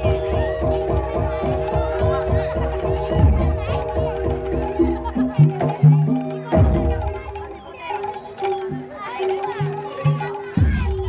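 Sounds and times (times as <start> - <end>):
drums keeping a steady beat: 0.0 - 11.0
voices singing or shouting: 0.0 - 11.0.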